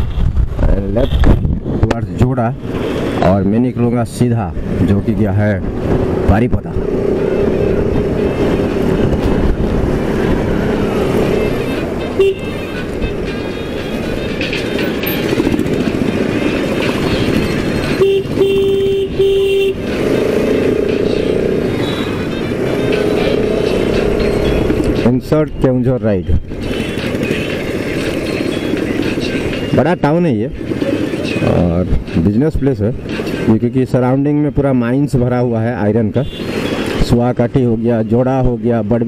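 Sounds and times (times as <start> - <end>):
wind and road noise: 0.0 - 39.0
horn beeping: 11.2 - 14.3, 17.2 - 25.0.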